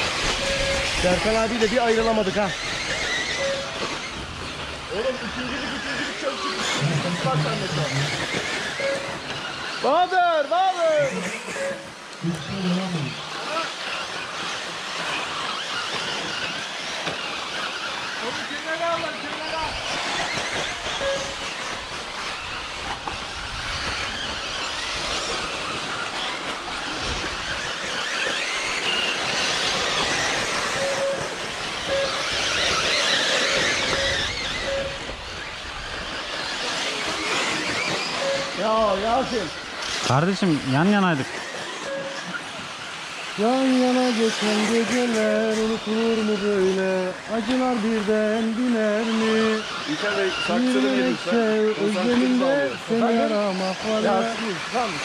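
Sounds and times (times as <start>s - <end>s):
rc car motors whining: 0.0s - 55.0s
man's voice: 43.4s - 55.0s.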